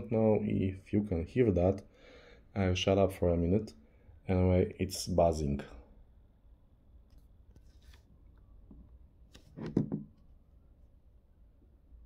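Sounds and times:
knock and rub of handling: 8.7s - 10.2s.

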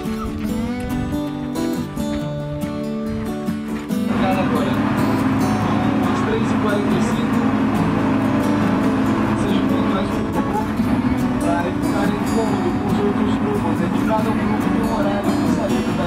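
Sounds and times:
music: 0.0s - 16.0s
boat engine drone: 3.6s - 16.0s
people talking: 4.1s - 16.0s.

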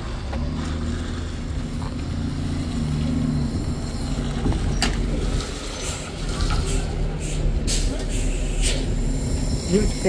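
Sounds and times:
diesel bus engine idling: 0.0s - 10.0s
short air hisses: 6.7s - 8.9s.

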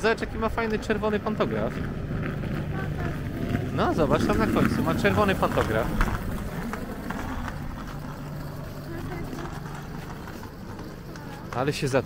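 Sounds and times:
electric train hum: 0.0s - 12.0s.

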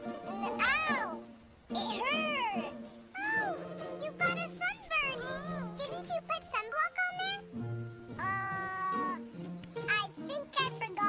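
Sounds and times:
soft background music: 0.0s - 11.0s
cartoon character high cries: 1.9s - 4.6s.

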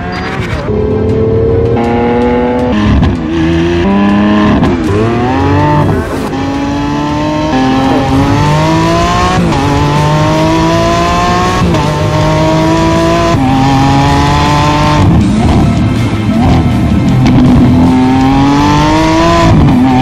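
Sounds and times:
car engine accelerating through gears: 0.0s - 20.0s.

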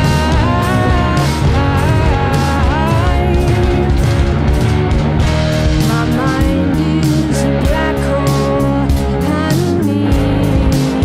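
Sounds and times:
drum kit and cymbals: 0.0s - 11.0s
electric bass: 0.0s - 11.0s
electric guitar with pitch bends: 0.0s - 11.0s.

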